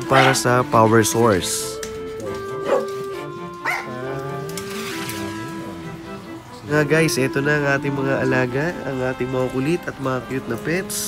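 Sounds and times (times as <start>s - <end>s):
background music with held notes: 0.0s - 11.0s
dog barking: 0.1s - 0.5s, 2.6s - 2.9s, 3.6s - 3.9s.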